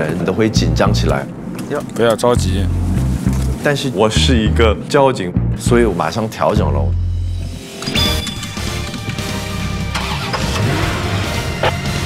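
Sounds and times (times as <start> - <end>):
background music: 0.0 - 1.5, 2.1 - 12.0.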